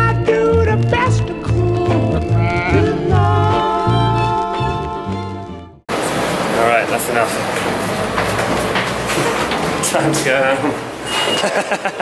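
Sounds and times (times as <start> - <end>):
subway train rumbling and clattering: 5.9 - 11.8.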